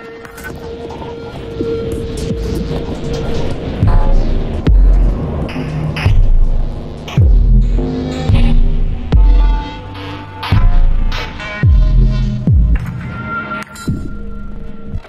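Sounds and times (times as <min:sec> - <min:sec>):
experimental electronic music: 0:00.0 - 0:15.0.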